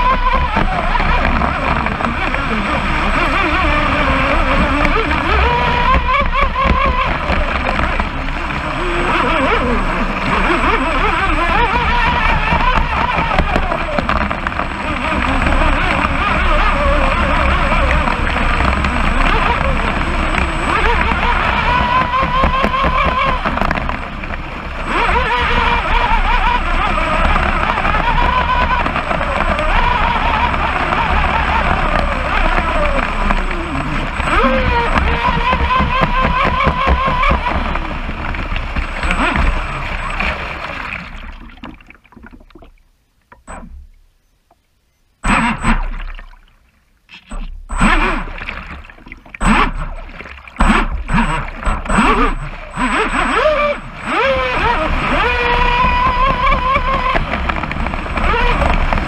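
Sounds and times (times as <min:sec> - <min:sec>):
motor whine: 0:00.0 - 0:42.0, 0:43.3 - 0:46.4, 0:47.1 - 0:59.0
water rushing against hull: 0:00.0 - 0:59.0
water splashing and gurgling: 0:00.0 - 0:59.0.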